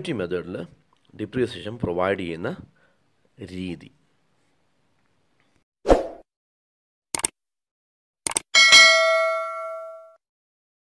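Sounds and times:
notification bell chime: 8.6s - 10.2s.

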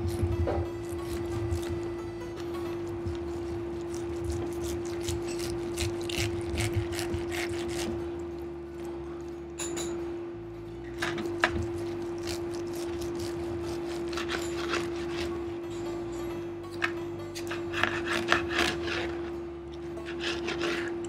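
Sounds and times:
knife sawing through roast meat: 0.0s - 2.0s, 2.9s - 8.2s, 11.4s - 15.6s, 17.4s - 21.0s
knife and fork scraping plate: 4.0s - 6.4s, 12.3s - 15.3s, 17.4s - 19.4s, 20.0s - 21.0s.

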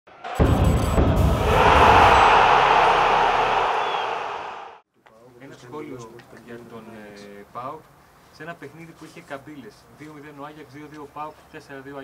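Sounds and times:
deep low hit: 0.1s - 3.8s
rushing swell: 0.1s - 4.8s.

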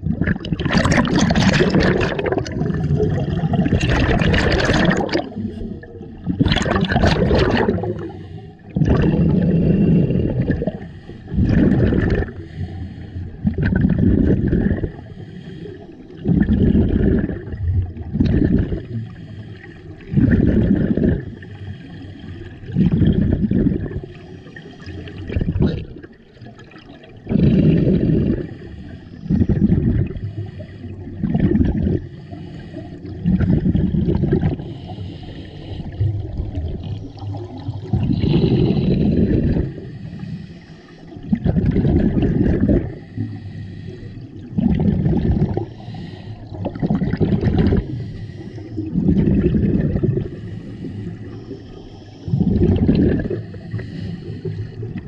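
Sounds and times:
scuba regulator bubbles: 0.0s - 55.0s.

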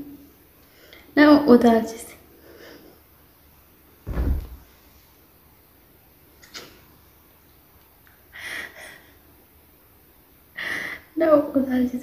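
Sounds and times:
dull thump: 4.1s - 4.7s.

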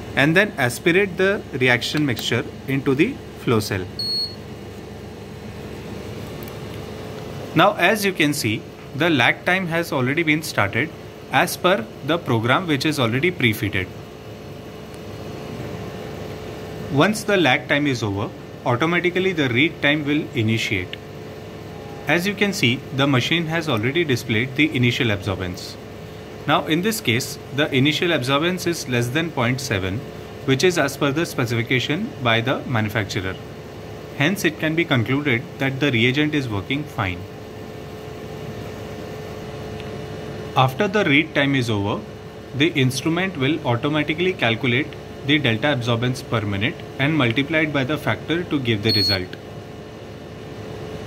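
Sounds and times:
machine hum: 0.0s - 51.0s.

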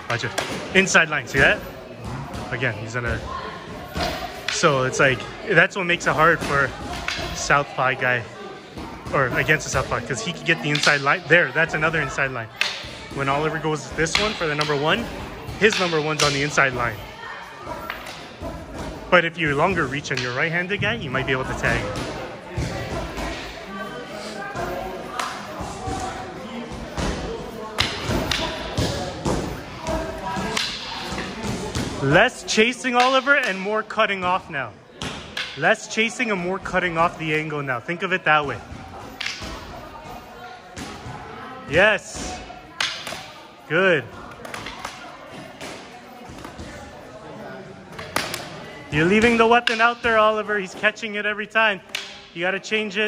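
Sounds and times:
gym room noise: 0.0s - 53.0s.

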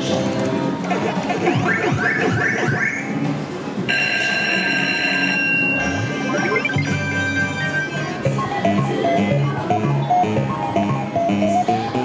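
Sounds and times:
steady high electronic tone: 5.8s - 8.2s
swooping synthesized tones: 6.0s - 9.3s.

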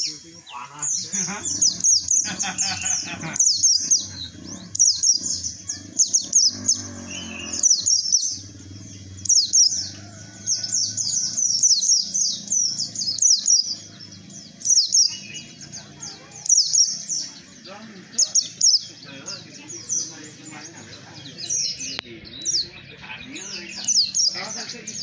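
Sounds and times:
bird twittering: 0.0s - 25.0s.

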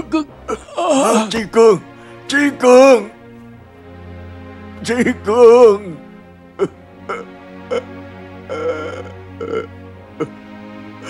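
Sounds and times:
background music: 0.0s - 11.0s
man sobbing: 0.5s - 3.0s, 4.9s - 11.0s.

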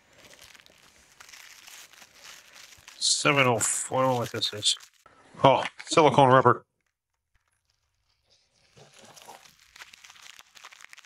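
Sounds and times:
plastic packaging crinkling: 0.0s - 5.1s, 6.7s - 11.0s.

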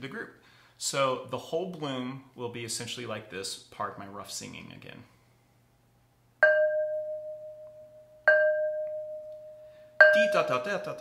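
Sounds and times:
mallet striking ceramic flowerpot: 6.4s - 9.4s, 10.0s - 11.0s.

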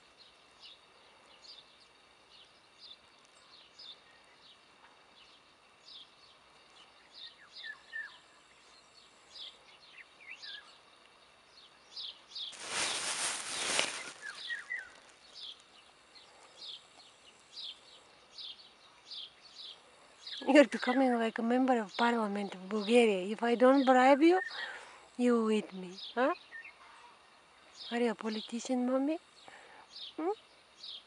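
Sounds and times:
small bird chirping: 0.1s - 24.8s, 25.9s - 31.0s.

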